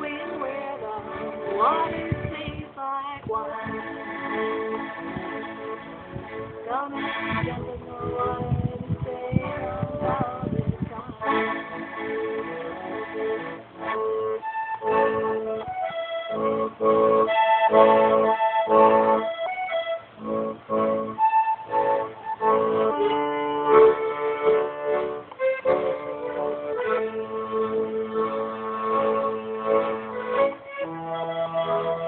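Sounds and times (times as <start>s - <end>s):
piano accordion chords: 0.0s - 32.0s.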